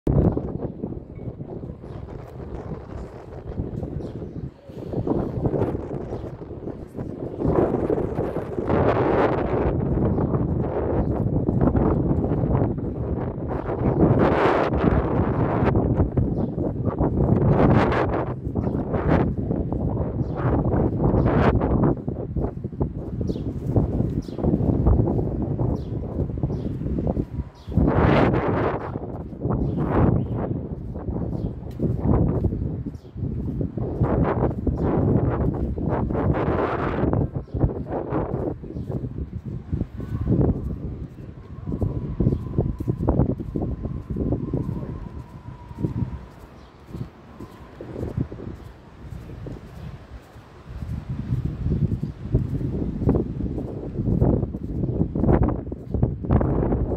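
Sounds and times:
wind buffeting microphone: 0:00.0 - 0:56.9.

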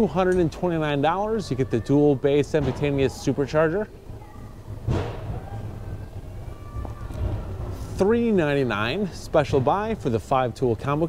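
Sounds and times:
faint background music: 0:00.0 - 0:11.0
steady low hum: 0:00.0 - 0:11.0.

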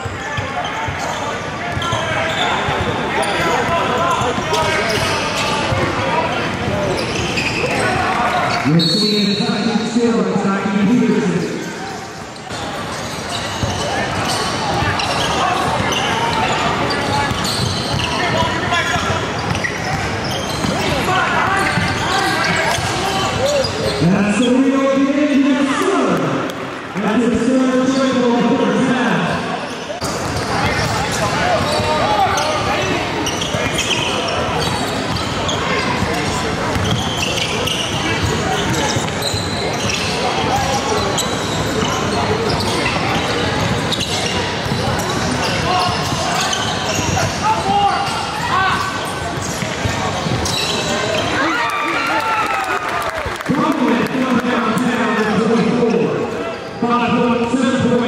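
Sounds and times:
voices of players and spectators: 0:00.0 - 0:58.0.

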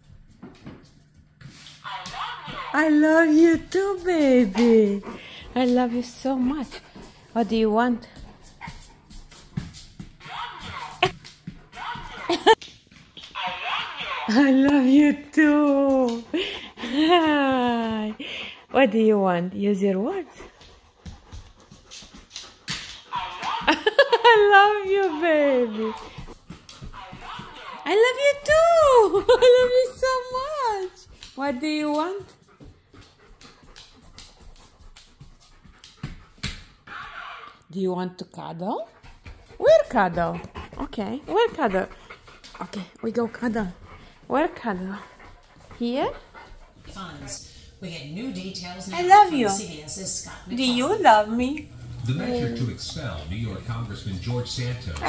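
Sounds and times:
dog panting softly: 0:02.8 - 0:12.6, 0:14.3 - 0:36.9, 0:38.8 - 0:55.0
dog claws clicking on floor: 0:31.0 - 0:37.0.

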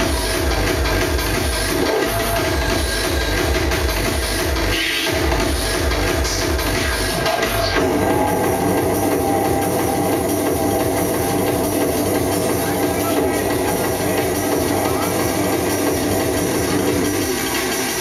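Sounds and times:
electronic dance music breakdown: 0:00.0 - 0:18.0.

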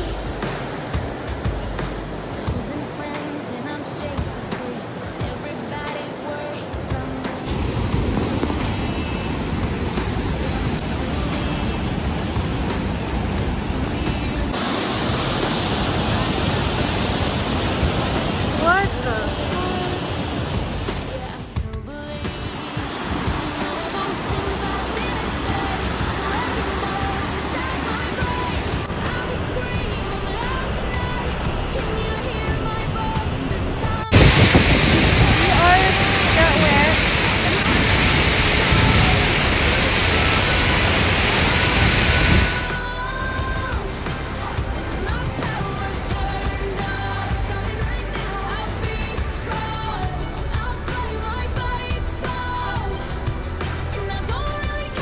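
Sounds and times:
whitewater and waterfall rushing: 0:00.0 - 0:55.0
voices: 0:15.4 - 0:55.0.

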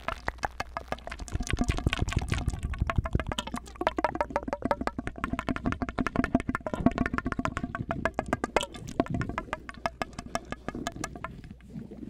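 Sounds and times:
mouth clicks through plastic tube: 0:00.0 - 0:12.0.

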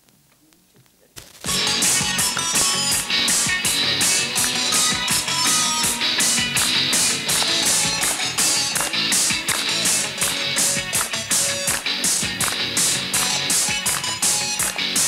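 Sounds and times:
electric guitar: 0:01.5 - 0:15.0
live rock band playing: 0:01.5 - 0:15.0.

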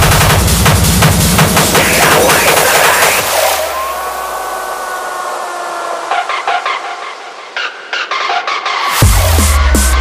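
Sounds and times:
noise wash: 0:00.0 - 0:09.1.

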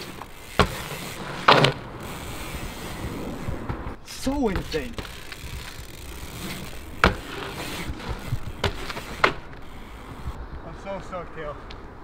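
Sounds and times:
sharp knocks from bike: 0:00.0 - 0:01.9, 0:03.6 - 0:09.6
bike rolling on asphalt: 0:00.0 - 0:12.0.

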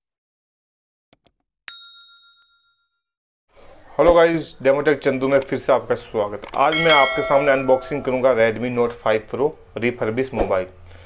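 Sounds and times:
bright bell ding: 0:01.7 - 0:02.8, 0:06.7 - 0:08.5
mouse clicks: 0:05.3 - 0:05.5.

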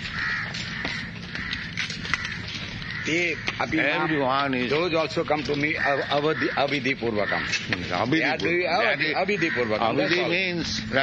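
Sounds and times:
crows cawing: 0:00.0 - 0:11.0.

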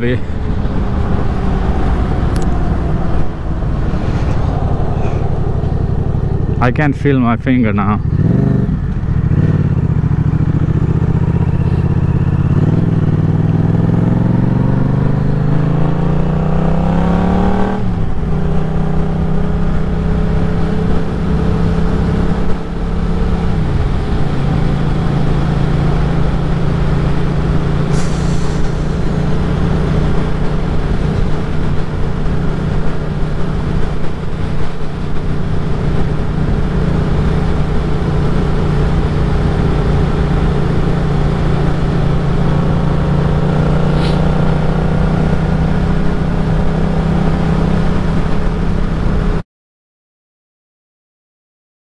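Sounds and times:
wind noise: 0:00.0 - 0:09.6, 0:16.5 - 0:49.4
motorcycle engine accelerating: 0:00.0 - 0:49.4.

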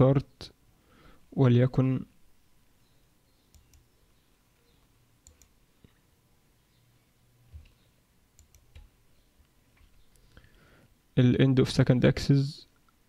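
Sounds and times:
computer mouse clicks: 0:03.4 - 0:03.9, 0:05.2 - 0:06.0, 0:07.5 - 0:09.0.

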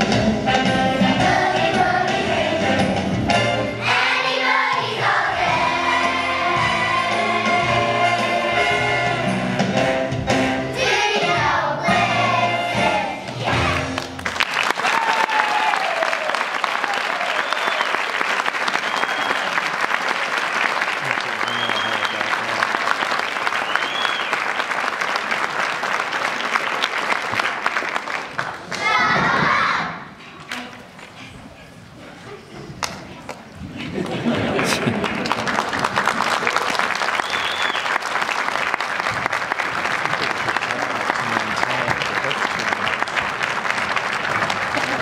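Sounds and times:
children's choir singing: 0:00.0 - 0:09.9, 0:10.6 - 0:14.1
audience applause with cheers: 0:13.5 - 0:28.8, 0:34.3 - 0:45.0.

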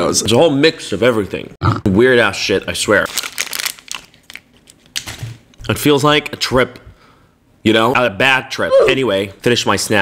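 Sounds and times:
snack crinkling and crunching: 0:03.0 - 0:05.2.

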